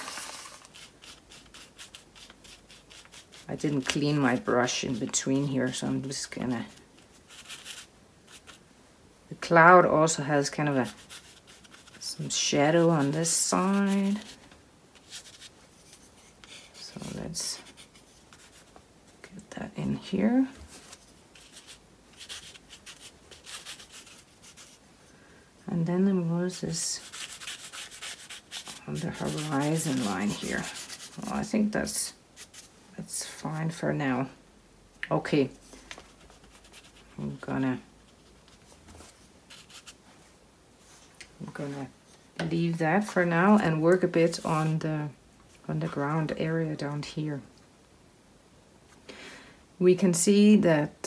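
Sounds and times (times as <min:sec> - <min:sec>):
paintbrush scrubbing on paper: 0:00.0 - 0:08.6, 0:10.6 - 0:14.4, 0:15.0 - 0:18.7, 0:20.8 - 0:24.8, 0:26.7 - 0:31.5, 0:36.1 - 0:37.2, 0:38.1 - 0:40.0.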